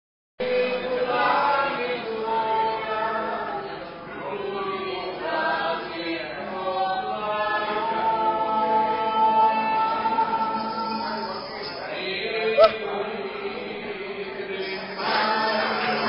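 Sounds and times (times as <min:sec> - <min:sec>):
voices singing in harmony: 0:00.4 - 0:16.0.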